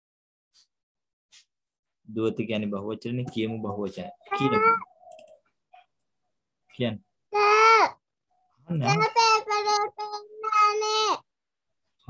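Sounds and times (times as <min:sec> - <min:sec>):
high-pitched vocal sound: 0:04.3 - 0:04.9, 0:07.3 - 0:08.0, 0:08.8 - 0:11.3.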